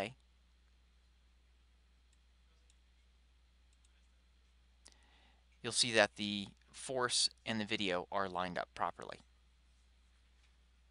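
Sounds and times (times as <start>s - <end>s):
low steady hum: 0.0s - 10.9s
click: 2.1s - 2.8s, 3.7s - 4.0s.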